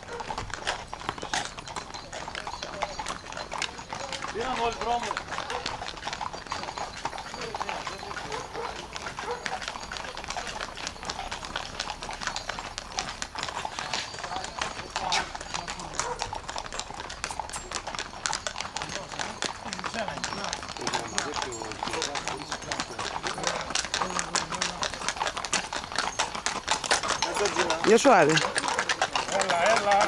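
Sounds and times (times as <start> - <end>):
horse hooves on pavement: 0.0 - 30.0.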